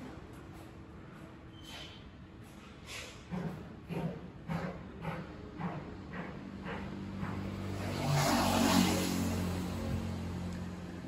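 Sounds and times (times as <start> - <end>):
motor vehicle passing by: 6.2 - 11.0.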